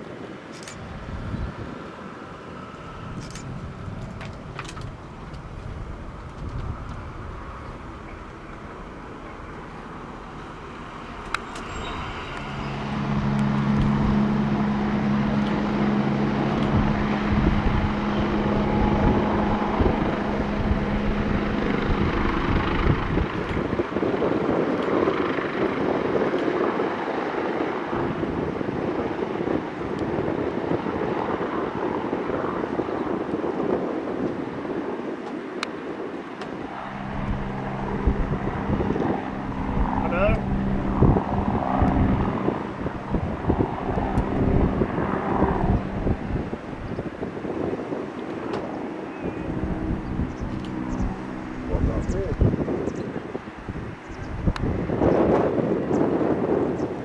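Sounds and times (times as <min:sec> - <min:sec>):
wind rushing on microphone: 0:00.0 - 0:57.0
low engine hum: 0:00.6 - 0:25.8, 0:36.3 - 0:57.0.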